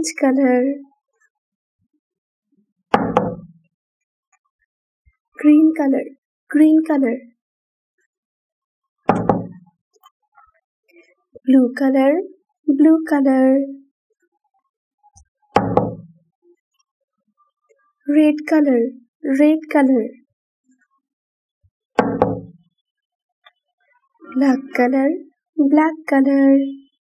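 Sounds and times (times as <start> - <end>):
paint jar knocking on tabletop: 3.0 - 3.6, 9.1 - 9.6, 15.6 - 16.1, 22.0 - 22.6.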